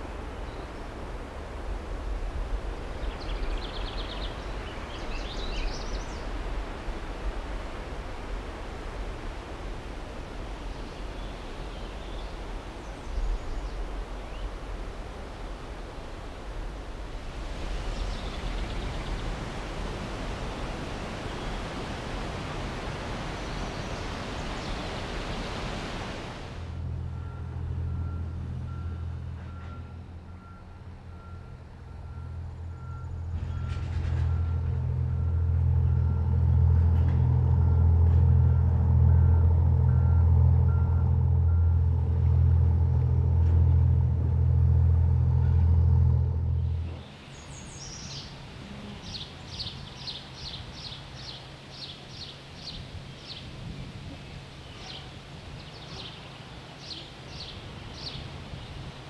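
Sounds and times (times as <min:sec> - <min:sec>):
diesel engine running: 0:26.6 - 0:47.1.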